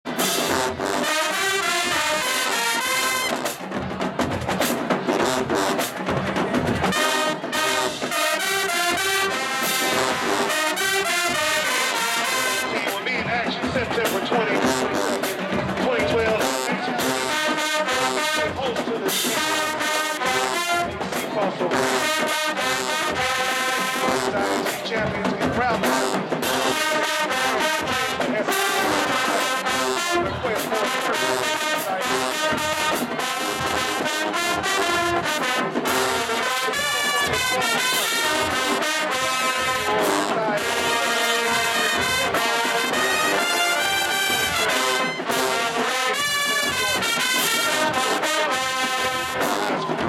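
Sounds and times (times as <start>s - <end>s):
crowd voices: 0.0s - 50.0s
marching band playing: 0.0s - 50.0s.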